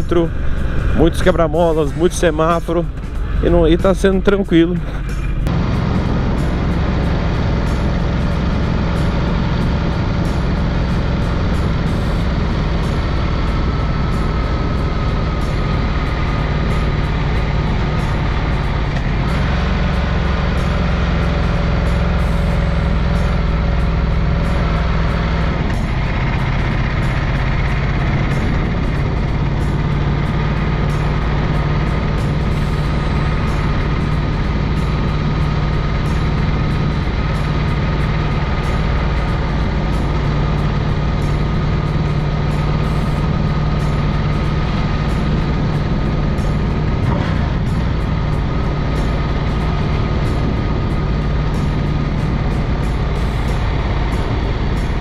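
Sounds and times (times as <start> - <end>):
motorcycle engine running: 0.0 - 55.0
wind rush on microphone: 23.6 - 55.0.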